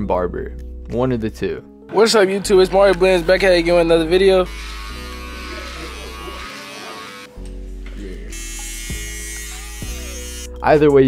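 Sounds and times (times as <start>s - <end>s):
background music: 0.0s - 11.0s
electric hair clippers buzzing: 2.3s - 7.4s, 8.3s - 10.6s.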